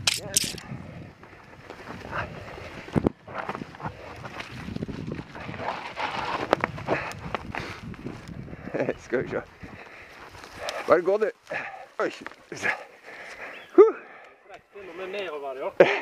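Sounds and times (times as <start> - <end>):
bike tyre and frame noise: 0.0 - 13.7.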